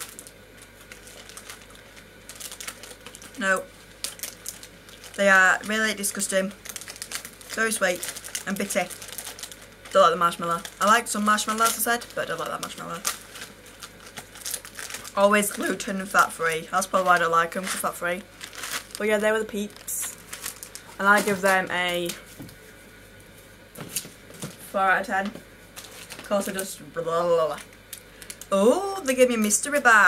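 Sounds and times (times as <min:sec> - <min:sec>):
candy packaging crinkling: 0:00.0 - 0:22.5, 0:25.2 - 0:30.0.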